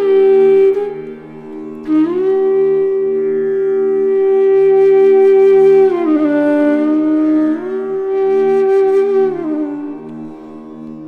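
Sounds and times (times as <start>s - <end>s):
bamboo flute playing: 0.0s - 11.0s.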